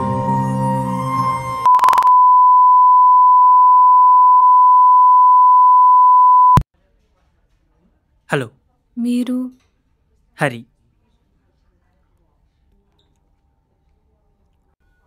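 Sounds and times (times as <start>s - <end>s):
high electronic beep: 1.6s - 6.6s.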